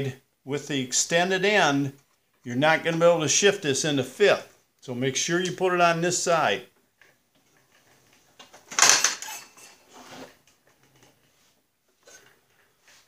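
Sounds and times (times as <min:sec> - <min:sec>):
metal parts clattering: 0:07.8 - 0:10.2.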